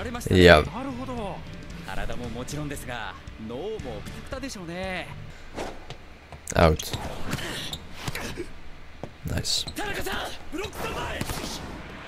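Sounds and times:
background music: 0.0s - 12.0s
person speaking: 0.1s - 0.8s.

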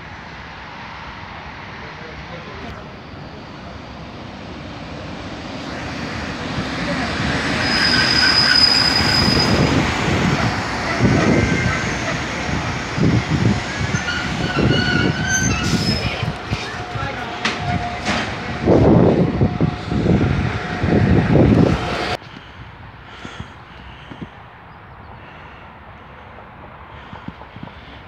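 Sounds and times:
diesel railcar rumble: 0.0s - 28.0s
high squeal: 7.4s - 21.4s.

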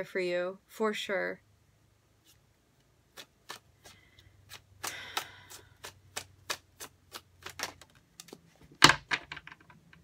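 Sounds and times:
cards being shuffled: 3.1s - 9.0s.

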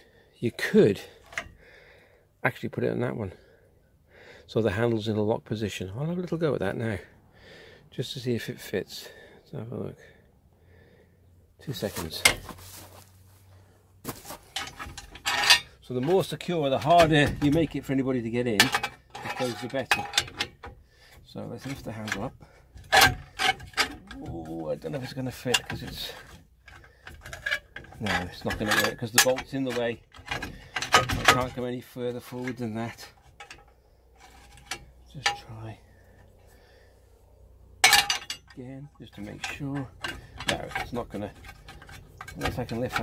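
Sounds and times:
metal clicks of trailer hitch: 0.6s - 1.6s, 14.6s - 36.3s, 37.8s - 43.0s
metal clinks and knocks: 11.9s - 12.8s, 14.1s - 36.4s, 37.8s - 43.0s.

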